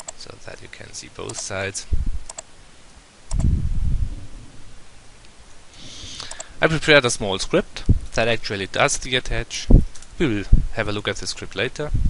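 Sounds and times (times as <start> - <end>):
computer mouse clicks: 0.0 - 0.2, 1.3 - 1.5, 2.2 - 2.5, 3.3 - 3.5, 6.2 - 6.5
low rustling rumble: 3.3 - 5.2.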